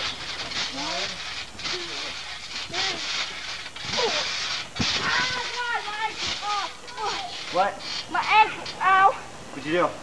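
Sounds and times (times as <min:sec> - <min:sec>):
rustling noise: 0:00.0 - 0:08.8.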